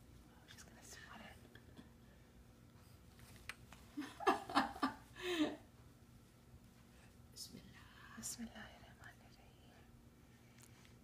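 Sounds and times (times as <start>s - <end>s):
faint whispering: 0.3s - 1.7s, 7.3s - 10.0s.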